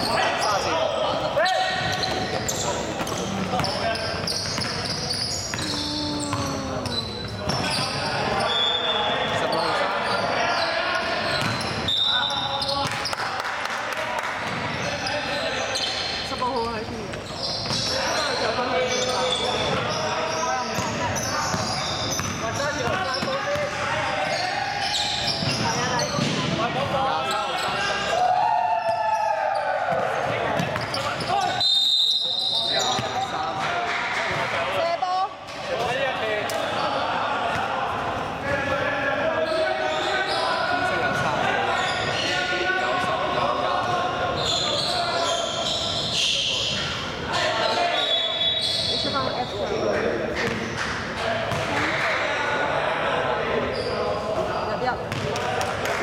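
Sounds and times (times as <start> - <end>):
players calling and shouting: 0.0 - 56.0.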